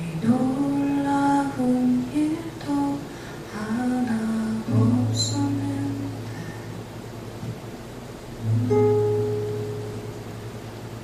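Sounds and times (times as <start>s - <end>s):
classical guitar playing: 3.6s - 6.9s, 8.2s - 11.0s.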